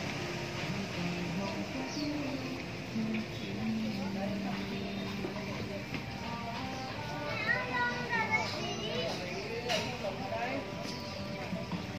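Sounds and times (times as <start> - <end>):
children calling out while playing: 7.2 - 9.4.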